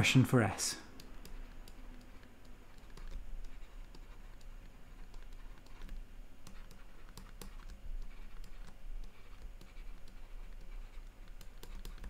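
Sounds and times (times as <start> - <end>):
low steady hum: 0.0 - 12.0
stylus tapping on a screen: 0.9 - 12.0.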